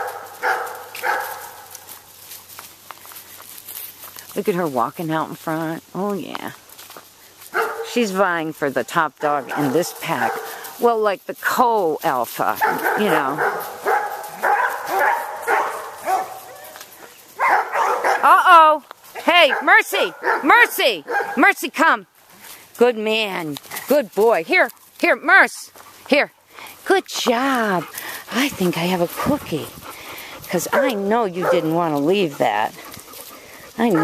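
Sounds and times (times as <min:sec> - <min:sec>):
dog barking: 0:00.0 - 0:01.6, 0:07.5 - 0:07.9, 0:09.2 - 0:10.6, 0:12.6 - 0:16.8, 0:17.4 - 0:18.3, 0:19.2 - 0:21.4, 0:30.7 - 0:31.7
faint clicks and rustles: 0:00.0 - 0:04.8, 0:12.2 - 0:18.1, 0:25.7 - 0:34.0.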